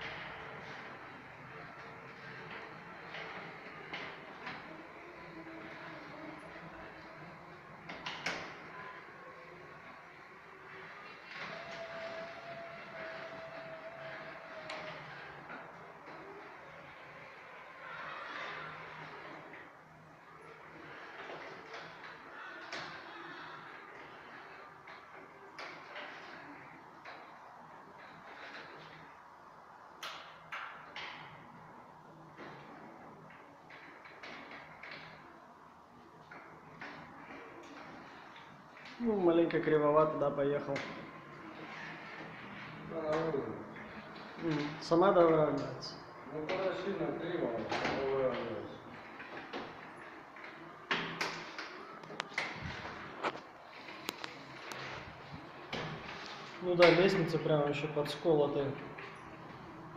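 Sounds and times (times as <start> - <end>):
electric wheelchair mechanical whir: 0.0 - 59.9.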